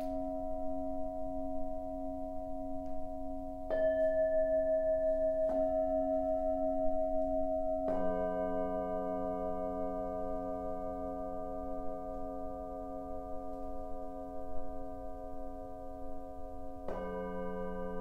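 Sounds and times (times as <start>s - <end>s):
singing bowls ringing: 0.0s - 18.0s.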